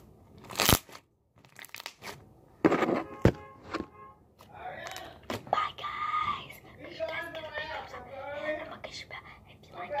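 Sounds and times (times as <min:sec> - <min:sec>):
girl talking softly: 0:05.5 - 0:06.7.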